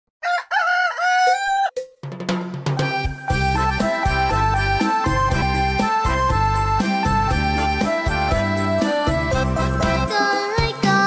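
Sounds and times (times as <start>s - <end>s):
rooster crowing: 0.2s - 1.8s.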